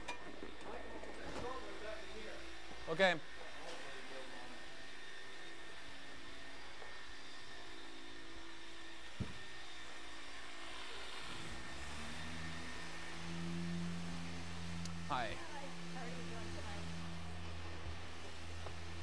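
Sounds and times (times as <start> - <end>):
electric machinery whirring hum: 0.0 - 19.0
deeper hum: 11.5 - 19.0.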